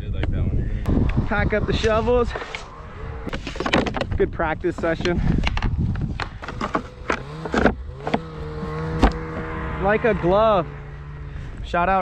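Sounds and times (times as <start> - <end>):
snowmobile engine idling: 6.4 - 12.0.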